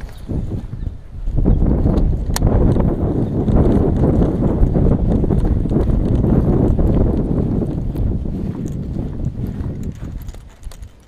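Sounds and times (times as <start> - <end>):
wind buffeting on microphone: 0.0 - 11.0.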